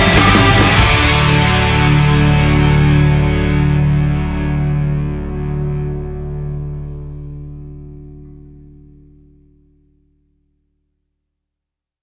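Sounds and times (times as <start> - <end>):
distorted electric guitar chord: 0.0 - 10.2.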